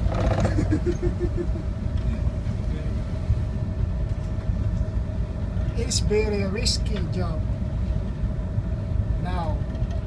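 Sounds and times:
ship engine rumbling: 0.0s - 10.0s
wind: 0.0s - 10.0s.

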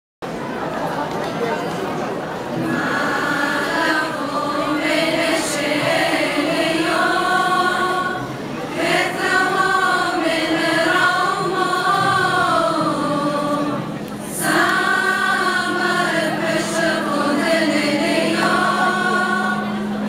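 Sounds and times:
female choir singing: 2.6s - 20.0s.

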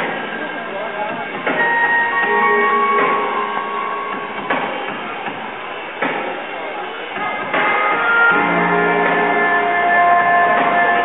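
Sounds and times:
show music with strong hits: 1.5s - 6.4s, 7.2s - 11.0s.

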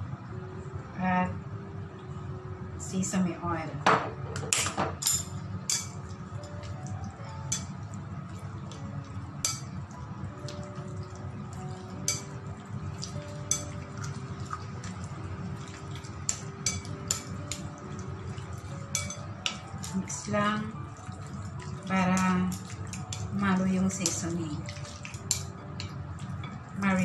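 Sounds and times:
faint music: 0.0s - 27.0s
chopsticks tapping ceramic bowl: 18.9s - 20.0s.

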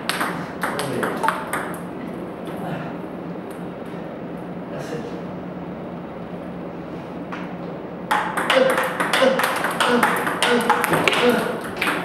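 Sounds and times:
room hum: 0.0s - 12.0s
table tennis ball clicks: 8.1s - 12.0s.

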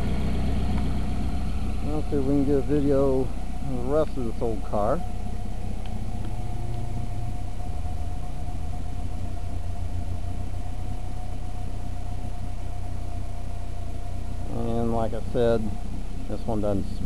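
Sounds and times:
car engine idling: 0.0s - 17.0s
thin steady whine: 0.0s - 17.0s.

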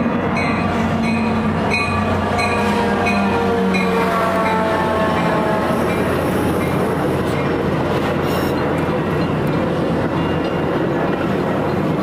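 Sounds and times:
diesel locomotive engine passing: 0.0s - 12.0s
train wheels rolling on rail: 0.0s - 12.0s.

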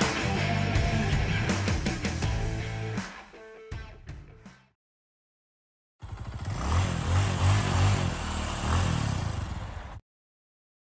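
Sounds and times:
motorcycle engine revving: 6.0s - 10.0s.

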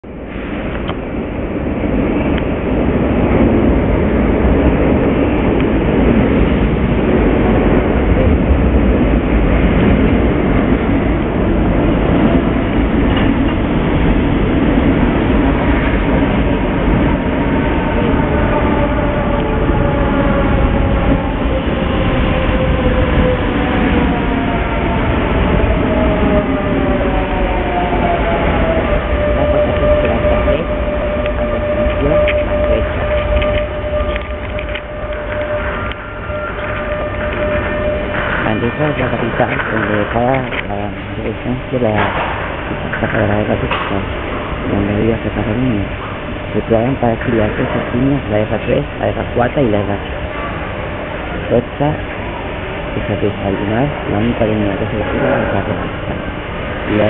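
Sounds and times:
train heavy rumble: 0.0s - 57.0s
train motors whining: 10.7s - 46.6s.

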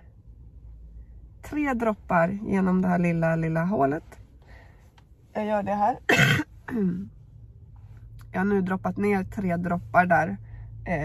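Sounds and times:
woman clearing throat: 6.1s - 6.9s.

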